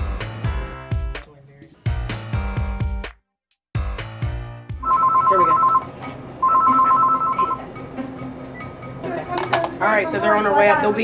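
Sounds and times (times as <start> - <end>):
telephone ringing two-tone trill: 4.8 - 7.7.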